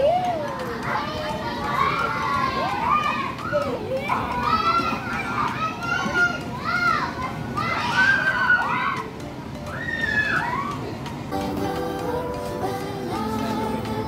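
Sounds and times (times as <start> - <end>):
children shouting and playing: 0.0 - 12.6.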